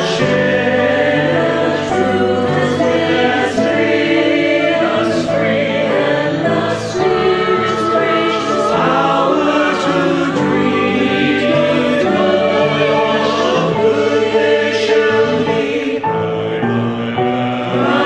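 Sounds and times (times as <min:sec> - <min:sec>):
mixed choir singing: 0:00.0 - 0:18.0
piano accompaniment: 0:00.0 - 0:18.0.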